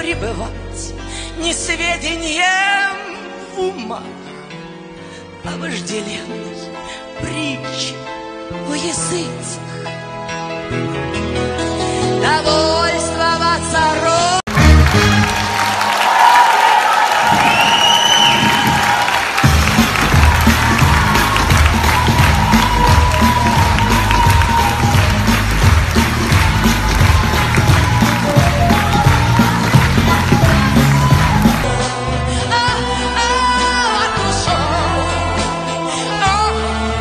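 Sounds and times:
music under applause: 14.2s - 31.8s
audience applauding and cheering: 14.5s - 32.2s
shrill whistle: 17.2s - 19.1s.

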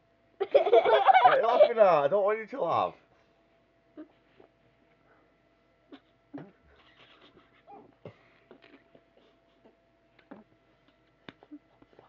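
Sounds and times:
boy's stifled laughter: 0.4s - 1.7s, 6.7s - 8.0s.

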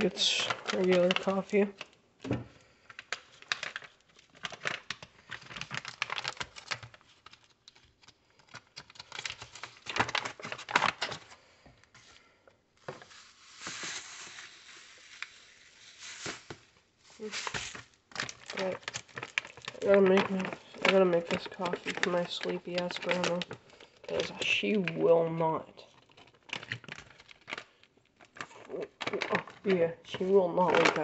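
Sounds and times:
paper crinkling and rustling: 0.0s - 31.0s
plastic parts clicking and knocking: 0.4s - 11.3s, 18.1s - 25.0s, 25.9s - 31.0s.

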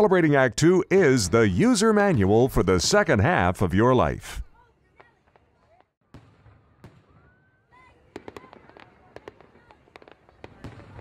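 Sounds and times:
fireworks popping and banging: 1.0s - 11.0s.

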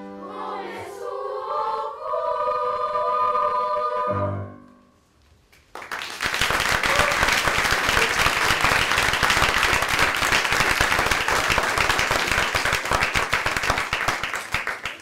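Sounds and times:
audience applauding: 5.6s - 15.0s.

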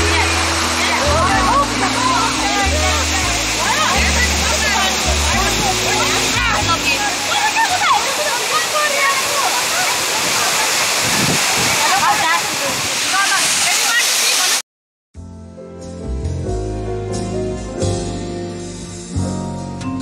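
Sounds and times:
voices: 0.0s - 14.6s
waterfall rushing: 0.0s - 14.6s
background music with low bass: 15.2s - 20.0s.

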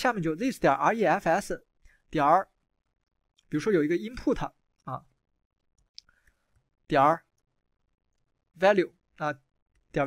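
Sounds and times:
person speaking: 0.0s - 2.7s, 3.3s - 10.0s.

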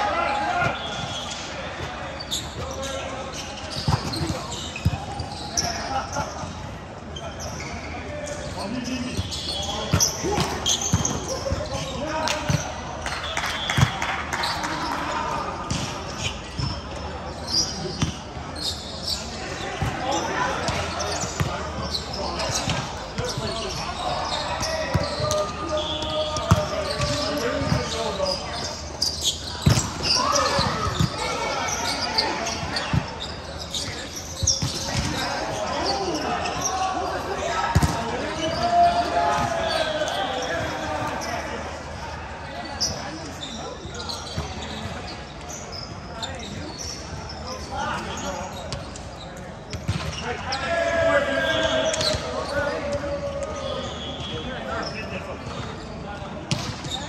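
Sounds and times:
players calling out: 0.0s - 55.4s.

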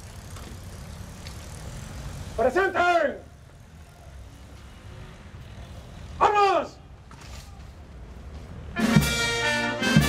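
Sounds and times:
shouted military command: 2.4s - 3.3s, 6.2s - 6.8s.

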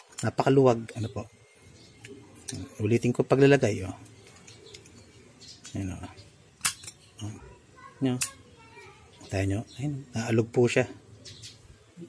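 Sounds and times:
sharp metallic click: 6.6s - 7.0s.

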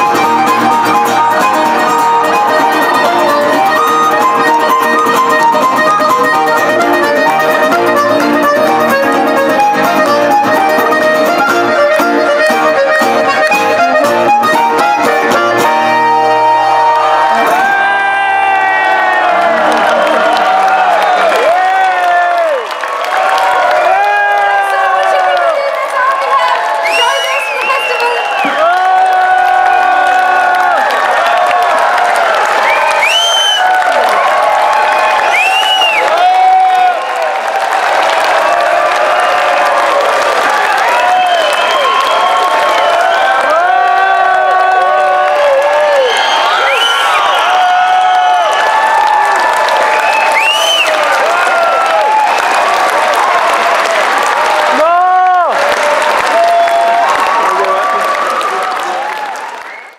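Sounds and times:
crowd cheering and whooping: 0.0s - 59.9s
crowd clapping: 0.0s - 59.9s.

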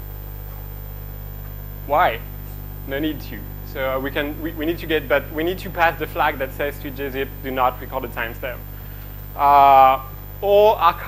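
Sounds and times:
electrical mains hum: 0.0s - 11.0s
person speaking: 1.9s - 2.3s, 2.9s - 8.7s, 9.4s - 11.0s.

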